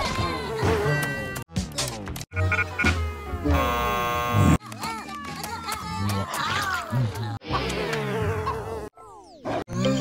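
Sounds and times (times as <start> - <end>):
cartoon fly buzzing: 7.6 - 9.0.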